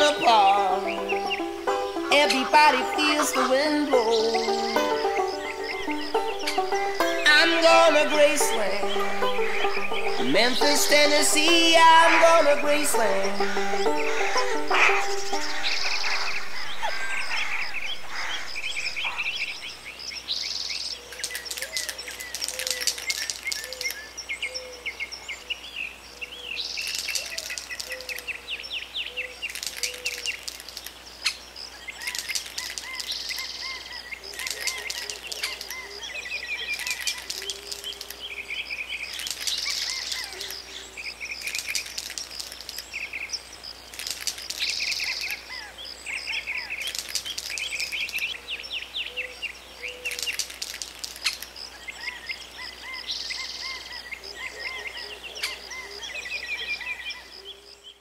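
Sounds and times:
birds chirping: 0:00.0 - 0:58.0
insects trilling: 0:00.0 - 0:58.0.

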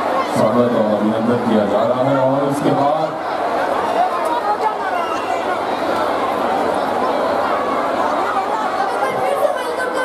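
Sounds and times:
murmur of many voices: 0:00.0 - 0:10.0.

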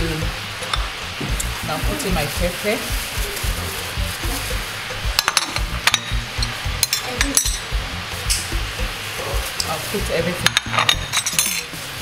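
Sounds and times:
background music with low beat: 0:00.0 - 0:12.0
plate clinking against steel bowl: 0:10.4 - 0:11.7.

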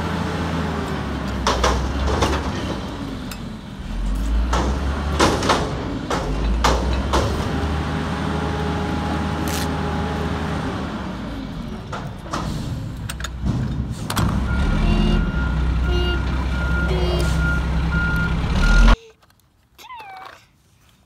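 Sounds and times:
diesel engine running: 0:00.0 - 0:19.0
reversing beeper: 0:14.4 - 0:19.0.

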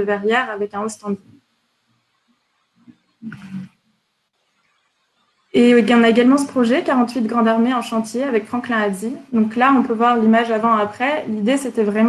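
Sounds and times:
rough vocal noise: 0:02.8 - 0:03.8.

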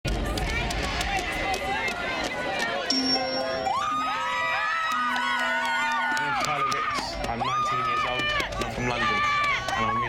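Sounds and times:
crowd babble: 0:00.1 - 0:10.0.

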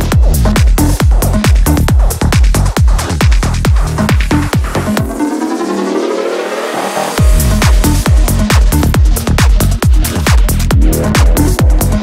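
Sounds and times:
kick drum and bass: 0:00.0 - 0:06.0, 0:07.0 - 0:12.0
synth sweep gliding in pitch: 0:05.0 - 0:08.3.

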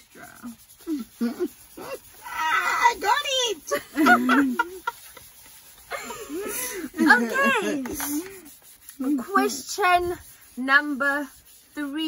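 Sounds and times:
woman laughing: 0:03.6 - 0:08.3.

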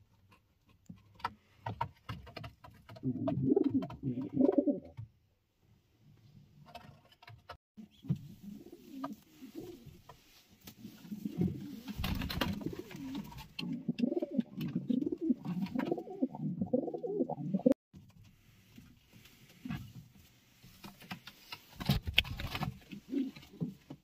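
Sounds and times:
pigeons cooing: 0:03.0 - 0:04.9, 0:11.0 - 0:17.8
wing flapping: 0:11.3 - 0:13.4.

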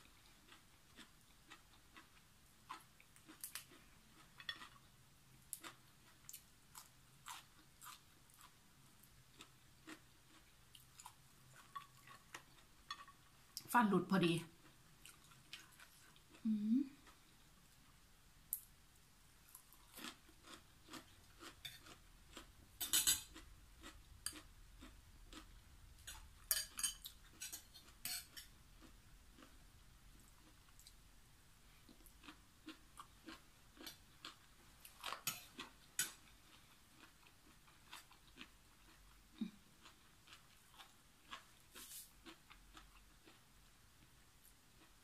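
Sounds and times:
person chewing crunchy vegetables: 0:00.0 - 0:12.8, 0:14.6 - 0:17.6, 0:19.4 - 0:31.0, 0:31.7 - 0:43.6
metal spoon clinking on glass bowl: 0:26.1 - 0:28.4.

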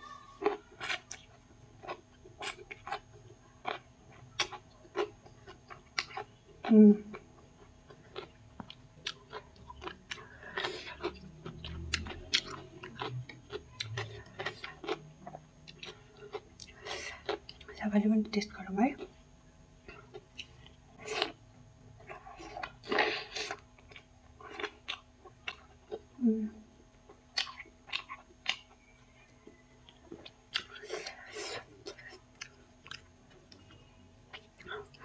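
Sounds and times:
person chewing food: 0:00.3 - 0:17.8, 0:19.8 - 0:26.2, 0:26.8 - 0:35.0.

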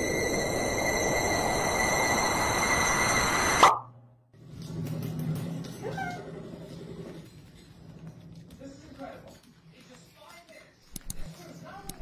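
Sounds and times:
electric whine: 0:00.0 - 0:03.9.

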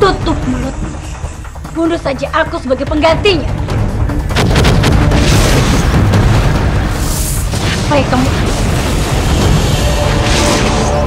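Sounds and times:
rumbling magic sound effect: 0:04.3 - 0:11.0.

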